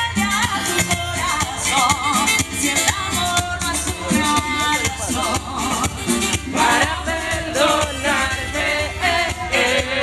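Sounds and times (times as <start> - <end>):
bass: 0.0 - 10.0
high percussion beat: 0.0 - 10.0
person singing: 0.0 - 10.0.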